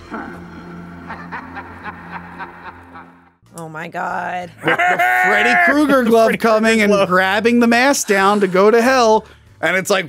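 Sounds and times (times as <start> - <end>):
cackling laugh: 0.9 - 3.3, 4.6 - 6.2.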